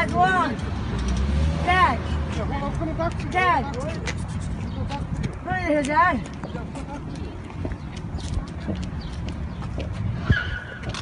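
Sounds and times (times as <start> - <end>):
low wind rumble: 0.0 - 11.0
street traffic noise: 0.0 - 11.0.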